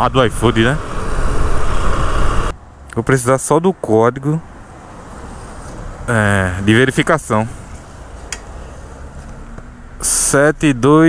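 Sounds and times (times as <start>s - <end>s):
low background rumble: 0.0s - 2.5s.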